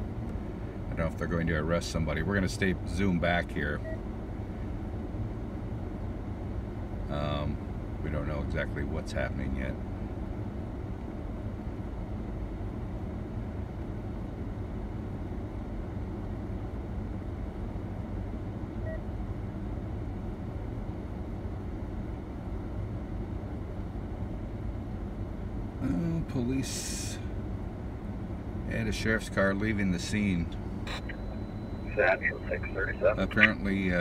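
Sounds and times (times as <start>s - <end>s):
car idling from inside: 0.0s - 34.0s.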